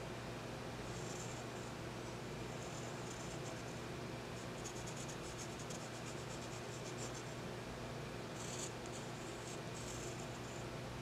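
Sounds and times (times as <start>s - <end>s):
steady low hum: 0.0s - 11.0s
pencil scratching on paper: 2.6s - 3.7s, 4.4s - 7.4s, 8.4s - 10.6s.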